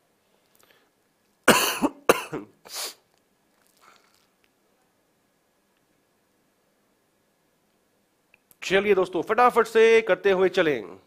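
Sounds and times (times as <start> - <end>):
man coughing: 1.5 - 2.6.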